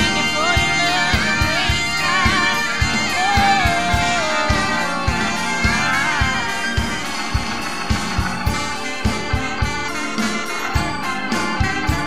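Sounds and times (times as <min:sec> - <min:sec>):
live band music: 0:00.0 - 0:12.0
saxophone: 0:00.0 - 0:12.0.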